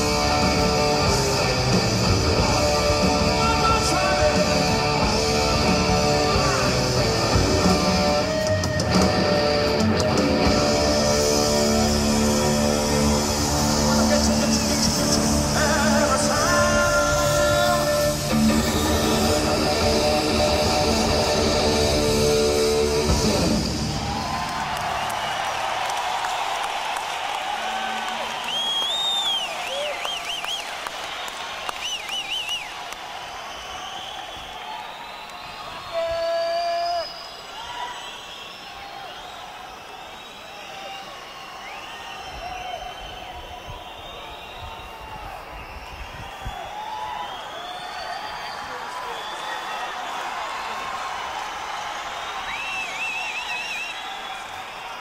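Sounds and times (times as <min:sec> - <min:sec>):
rock band playing held chord: 0:00.0 - 0:25.3
crowd cheering and whistling: 0:00.0 - 0:55.0.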